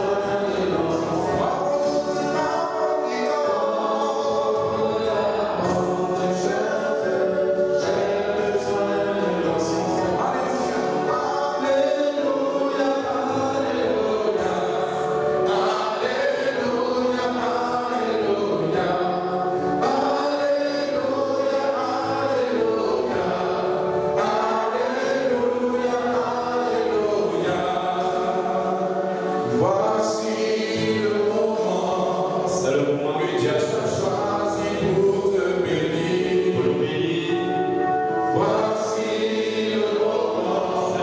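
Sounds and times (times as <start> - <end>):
congregation singing: 0.0 - 41.0.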